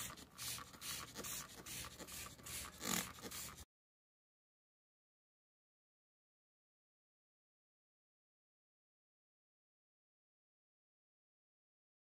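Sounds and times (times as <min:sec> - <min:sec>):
spray bottle hissing: 0:00.0 - 0:03.6.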